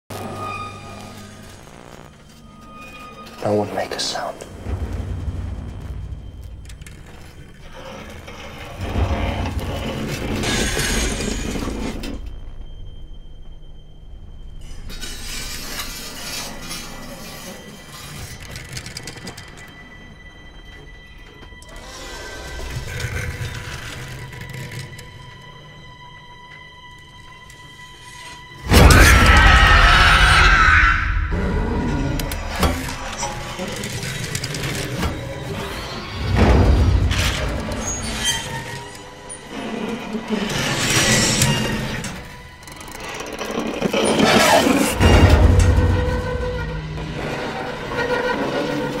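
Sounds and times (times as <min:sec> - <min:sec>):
tense film score: 0:00.0 - 0:49.0
loud crash: 0:28.6 - 0:31.8.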